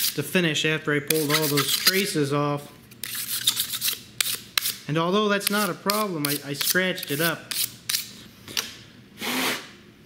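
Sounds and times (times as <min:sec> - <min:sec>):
razor blade scraping circuit board: 0:01.1 - 0:02.1, 0:03.0 - 0:04.8.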